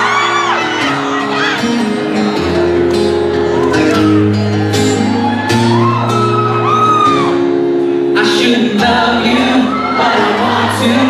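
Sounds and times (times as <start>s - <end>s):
acoustic guitar playing: 0.0s - 11.0s
audience member screaming: 3.6s - 7.6s.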